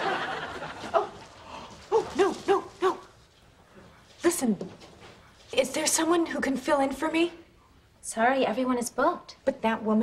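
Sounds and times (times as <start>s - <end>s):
audience laughter: 0.0s - 1.0s.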